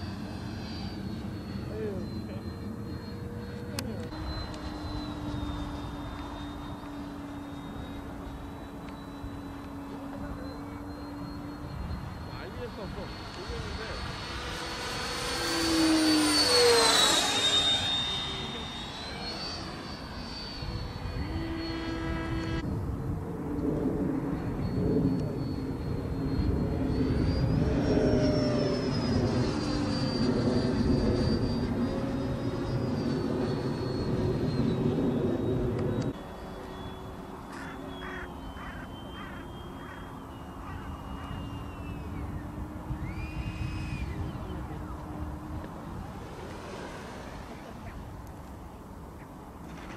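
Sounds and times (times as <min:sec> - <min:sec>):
model jet ducted fan whining: 0:00.0 - 0:49.9.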